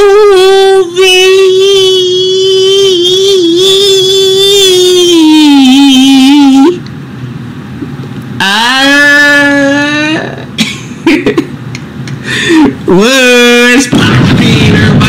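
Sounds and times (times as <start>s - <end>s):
man singing long held notes: 0.0s - 6.8s.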